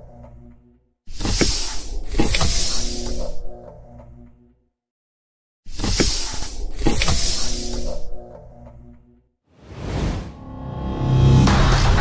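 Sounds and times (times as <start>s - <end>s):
cinematic whoosh: 9.6s - 12.0s
downward sweeps: 9.6s - 12.0s.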